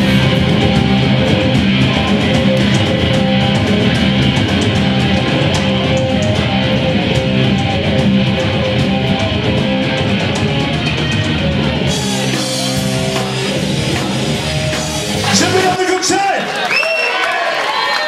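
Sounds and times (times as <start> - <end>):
rock band playing live: 0.0 - 16.8.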